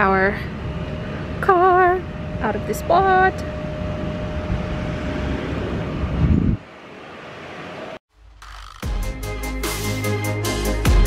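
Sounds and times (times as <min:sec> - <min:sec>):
wind rumbling on microphone: 0:00.0 - 0:08.0.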